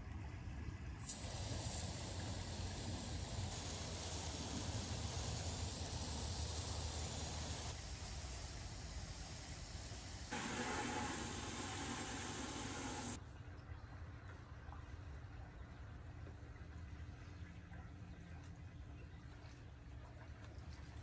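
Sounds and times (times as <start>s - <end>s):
garden hose spraying water: 1.0s - 13.2s.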